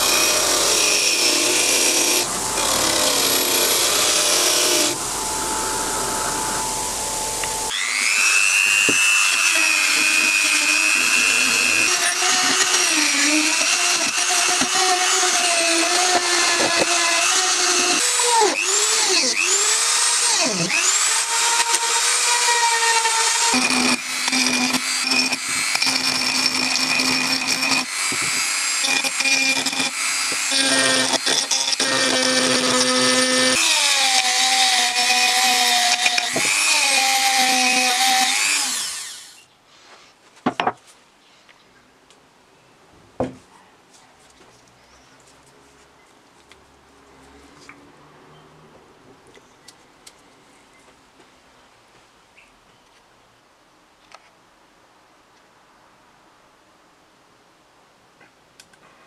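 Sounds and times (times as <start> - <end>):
rotary tool whining: 0.0 - 39.4.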